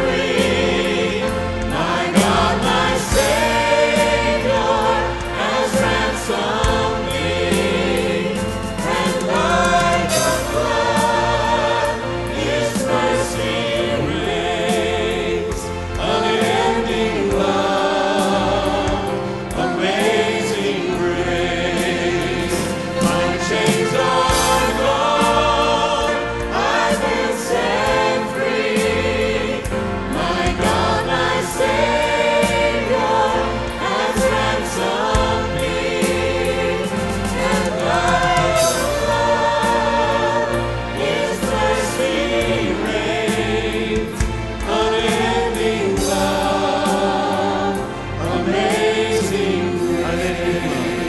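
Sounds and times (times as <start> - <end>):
instrumental backing: 0.0 - 51.0
vocal group singing in harmony: 0.0 - 51.0.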